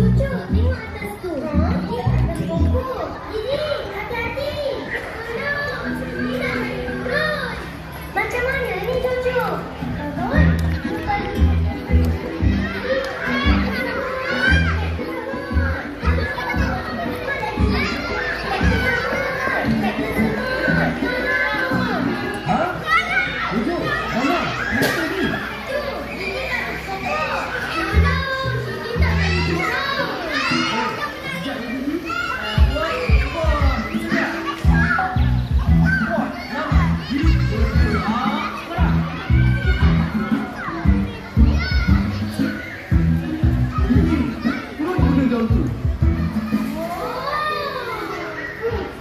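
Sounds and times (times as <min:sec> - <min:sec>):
loudspeaker music with bass: 0:00.0 - 0:00.8, 0:01.5 - 0:02.8, 0:09.6 - 0:22.3, 0:32.6 - 0:46.7
children calling out and chattering: 0:00.0 - 0:49.0.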